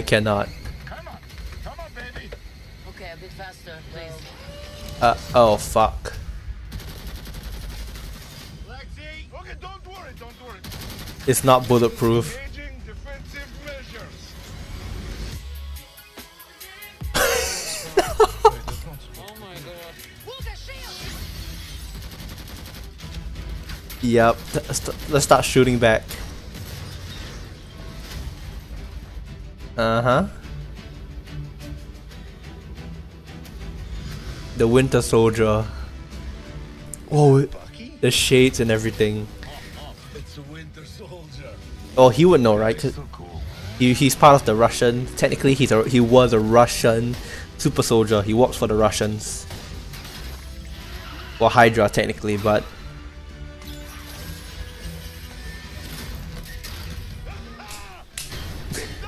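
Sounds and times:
faint film dialogue: 0:00.0 - 0:59.0.

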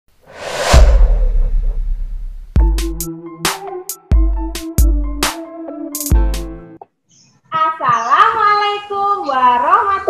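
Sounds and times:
whoosh sound effect: 0:00.3 - 0:02.7
deep bass boom: 0:00.4 - 0:03.1.

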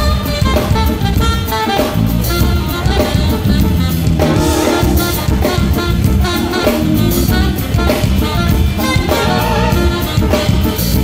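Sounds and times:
alto saxophone melody: 0:00.0 - 0:11.0
drum kit groove: 0:00.0 - 0:11.0
electric bass: 0:00.0 - 0:11.0.

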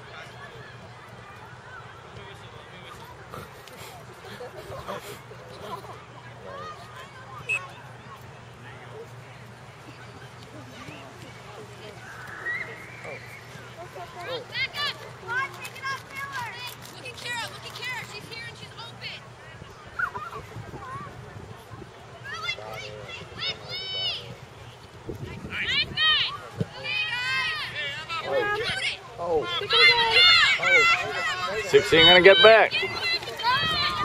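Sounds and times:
outdoor soccer game background: 0:00.0 - 0:34.0
girls shouting: 0:25.7 - 0:34.0.

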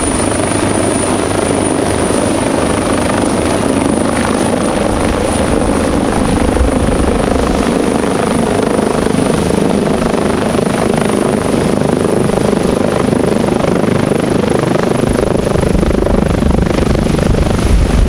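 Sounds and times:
helicopter rotor and turbines: 0:00.0 - 0:18.0.

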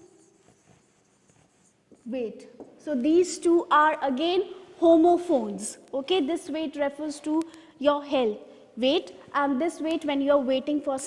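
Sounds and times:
pen writing on whiteboard: 0:00.1 - 0:02.8.

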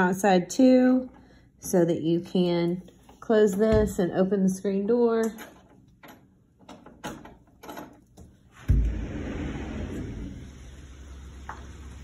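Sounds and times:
sliding door thump: 0:08.6 - 0:12.0.

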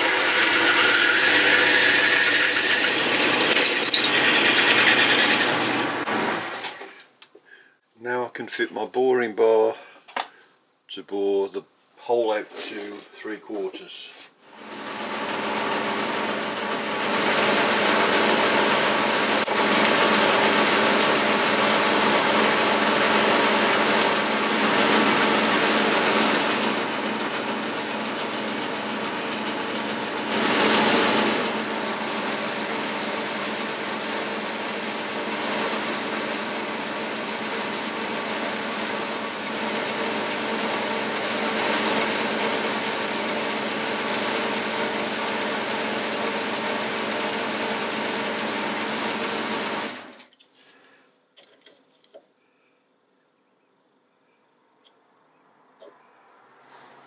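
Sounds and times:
metal cutting noise: 0:00.0 - 0:06.7, 0:14.6 - 0:50.1
lathe motor hum: 0:00.0 - 0:06.9, 0:14.4 - 0:50.2.

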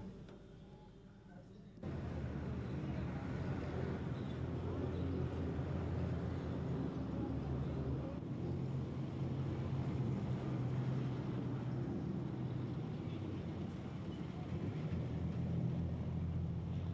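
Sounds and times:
vehicle engine rumbling: 0:01.8 - 0:16.9.

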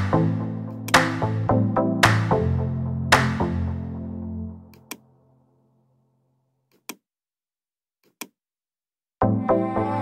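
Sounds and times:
background music: 0:00.0 - 0:05.8, 0:09.2 - 0:10.0.

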